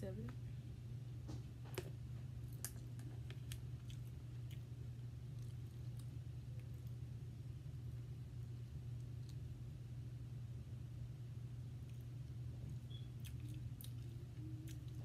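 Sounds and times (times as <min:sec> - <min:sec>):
steady low hum: 0:00.0 - 0:15.0
chewing: 0:02.5 - 0:04.7, 0:05.3 - 0:07.0, 0:11.8 - 0:15.0.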